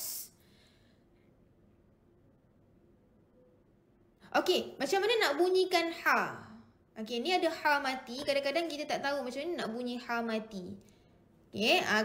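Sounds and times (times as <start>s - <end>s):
woman speaking: 4.3s - 10.9s, 11.5s - 12.0s.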